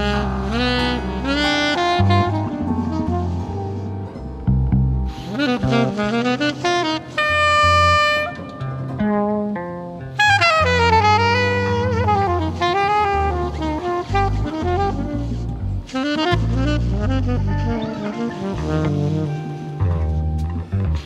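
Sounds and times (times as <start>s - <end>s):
saxophone melody: 0.0s - 21.0s
walking bass: 0.0s - 21.0s.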